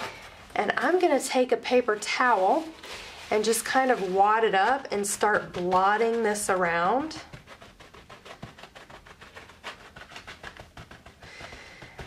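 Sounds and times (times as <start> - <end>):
paper towel scuffing on paper: 0.0 - 12.0.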